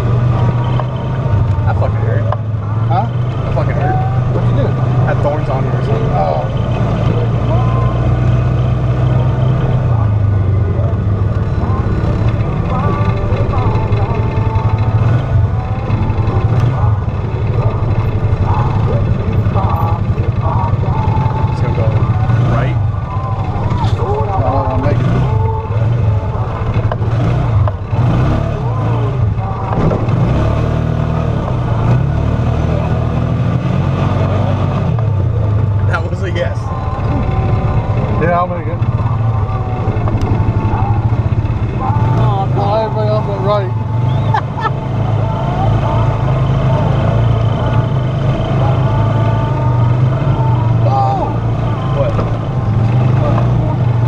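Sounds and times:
off-road vehicle engine running: 0.0 - 54.0.

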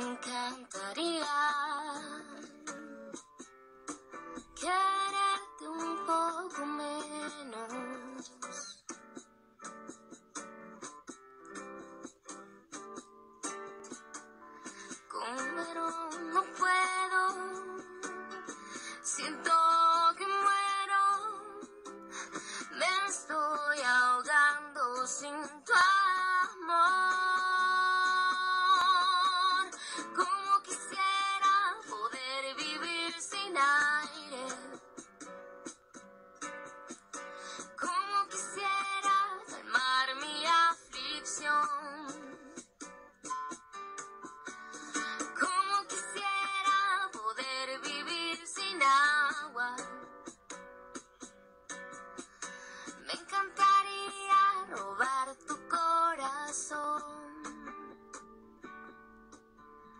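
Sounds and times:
woman singing love song: 0.0 - 2.7, 4.6 - 8.7, 14.9 - 34.9, 37.6 - 42.6, 44.9 - 50.2, 52.8 - 58.0
acoustic guitar: 0.0 - 59.9.

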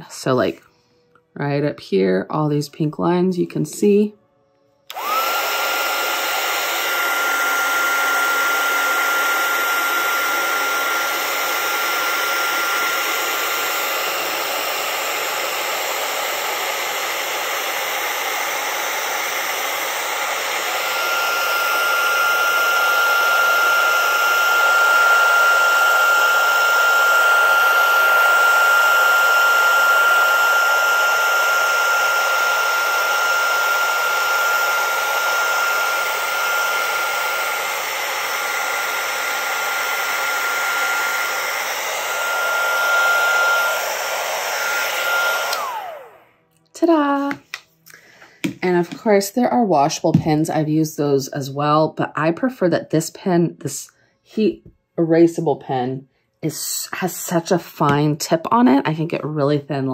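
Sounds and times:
heat gun blowing air: 4.9 - 46.3.

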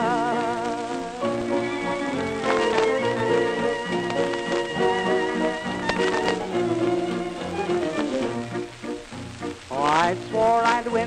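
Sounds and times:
band playing on old record: 0.0 - 11.0.

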